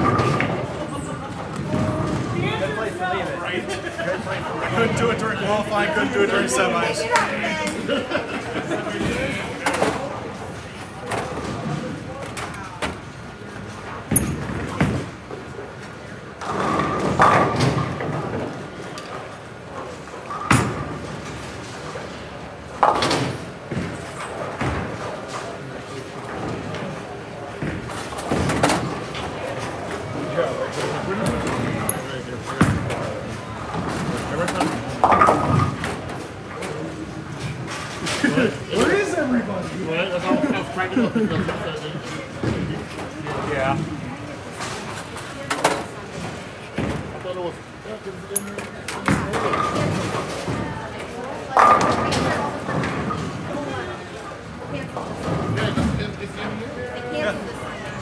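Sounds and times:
chatter of voices: 0.0s - 58.0s.

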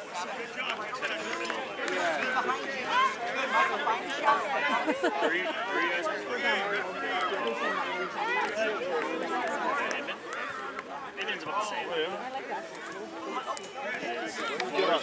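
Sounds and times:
many voices chattering: 0.0s - 15.0s
children's voices: 1.9s - 11.1s.

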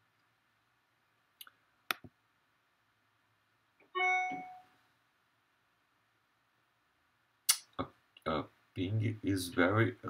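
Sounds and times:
bright metallic ding: 4.0s - 4.6s.

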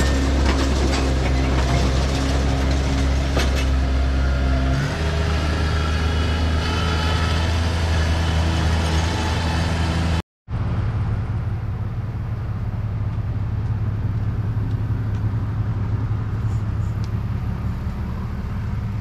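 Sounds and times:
loader engine running: 0.0s - 19.0s
low steady engine hum: 9.8s - 19.0s.

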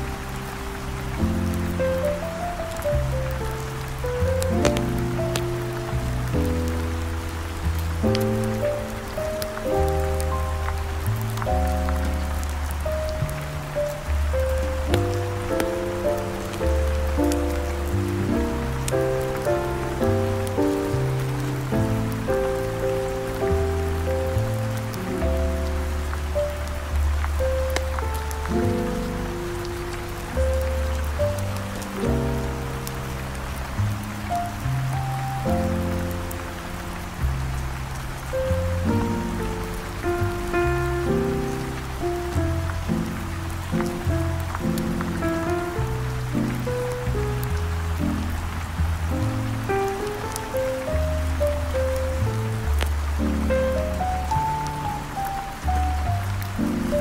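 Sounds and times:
heavy rain: 0.0s - 57.0s
smooth jazz: 0.0s - 57.0s.

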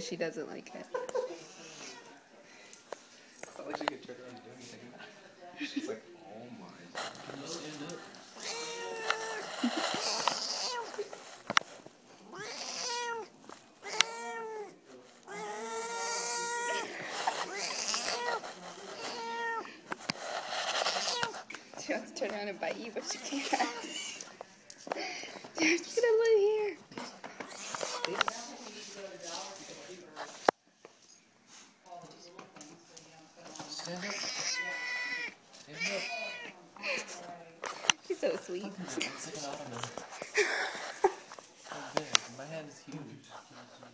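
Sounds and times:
cat meowing: 8.3s - 11.0s, 12.2s - 18.4s, 19.0s - 19.7s, 20.8s - 21.4s, 27.4s - 28.3s, 34.0s - 36.6s.

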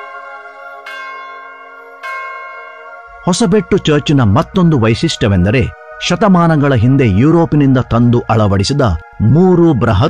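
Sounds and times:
church bell ringing: 0.0s - 9.4s.

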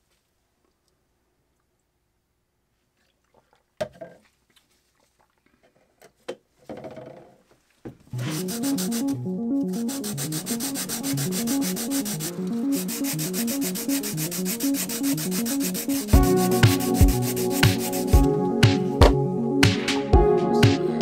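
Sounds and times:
sanding block rubbing: 8.2s - 18.3s
electronic music with beat: 8.2s - 21.0s.

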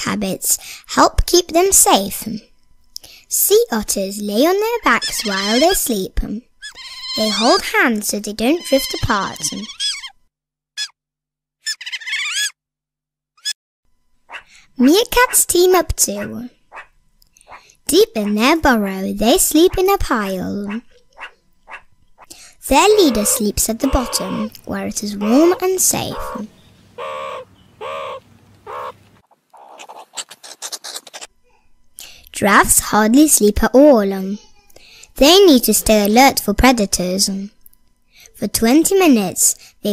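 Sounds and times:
sea otter squealing: 4.9s - 5.8s, 6.6s - 7.7s, 8.5s - 10.2s, 10.8s - 11.0s, 11.6s - 12.6s, 14.3s - 14.5s, 20.7s - 24.5s, 25.2s - 29.0s, 29.6s - 31.3s
short animal calls: 26.1s - 31.3s.

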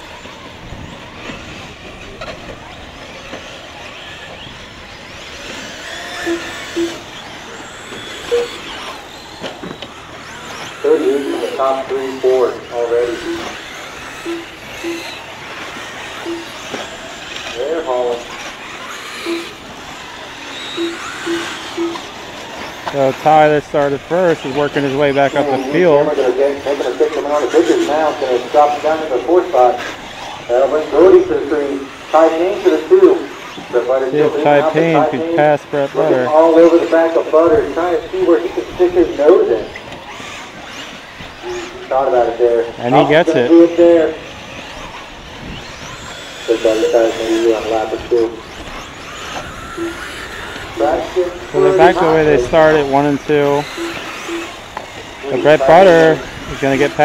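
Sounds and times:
electric toy cars racing: 0.0s - 57.0s
high electric motor whines: 0.0s - 57.0s
short low beeps: 6.0s - 7.2s, 7.9s - 9.4s, 13.2s - 17.4s, 19.2s - 23.1s, 49.2s - 55.0s
person speaking: 50.8s - 53.8s.

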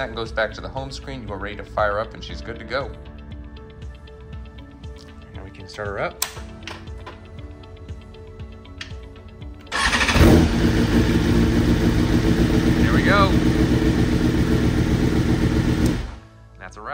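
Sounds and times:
motorcycle engine starting and idling: 9.7s - 16.2s.

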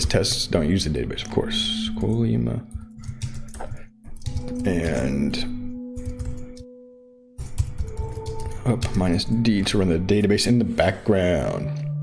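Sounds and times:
soft ambient music: 0.0s - 12.0s
typing on a keyboard: 2.0s - 5.2s, 6.0s - 6.7s, 7.4s - 9.2s.

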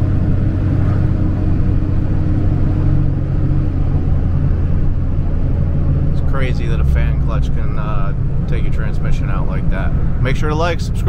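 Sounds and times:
diesel engine drone in cab: 0.0s - 11.0s
road noise: 0.0s - 11.0s.

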